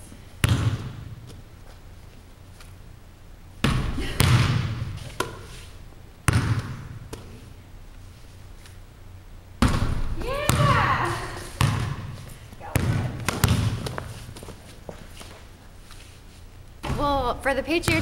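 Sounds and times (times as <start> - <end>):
basketball bouncing on gym floor: 0.4 - 1.4, 3.6 - 5.5, 6.2 - 7.4, 9.6 - 15.0, 16.8 - 18.0.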